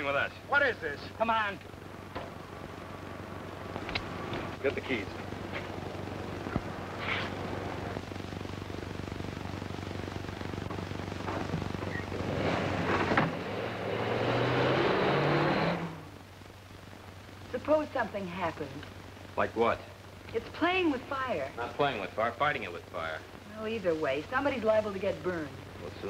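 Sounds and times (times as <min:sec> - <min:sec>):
film soundtrack hiss and hum: 0:00.0 - 0:26.0
car engine starting and revving: 0:12.1 - 0:16.2.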